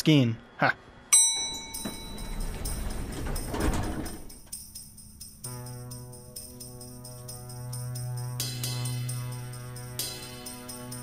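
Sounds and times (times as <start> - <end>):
elevator chime ding: 1.1 - 5.0
soundtrack music with jingling percussion: 1.6 - 11.0.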